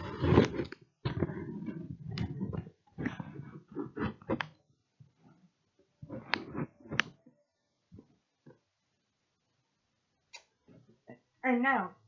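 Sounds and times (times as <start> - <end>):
rustling and handling noise: 0.0 - 8.8.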